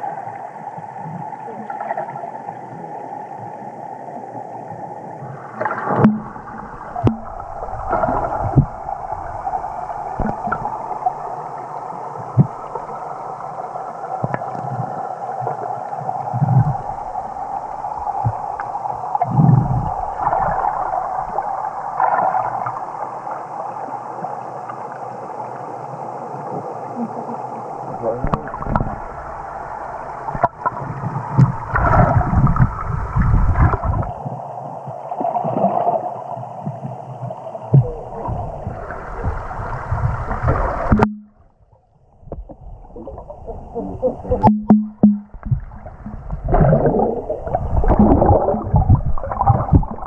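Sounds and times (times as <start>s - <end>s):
muffled underwater hum: 0.0s - 35.0s, 36.4s - 50.0s
sharp knocks: 44.4s - 45.6s.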